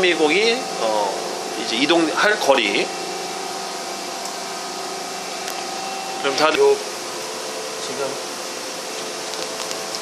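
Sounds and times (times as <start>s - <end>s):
machining center running hum: 0.0s - 10.0s.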